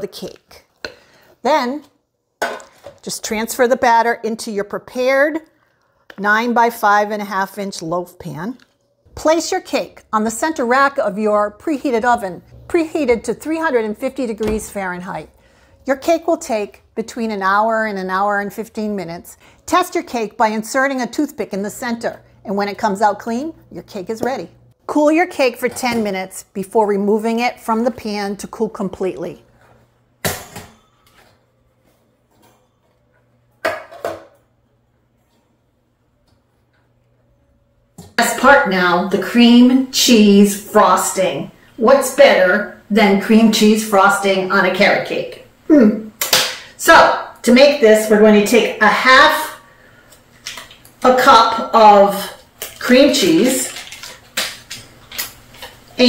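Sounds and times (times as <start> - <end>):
food wrappers crinkling: 52.5 - 55.9.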